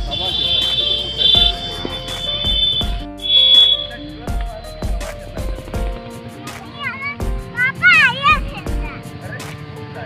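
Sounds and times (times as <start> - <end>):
background music with steady beat: 0.0 - 10.0
shrill high held tone: 0.1 - 4.0.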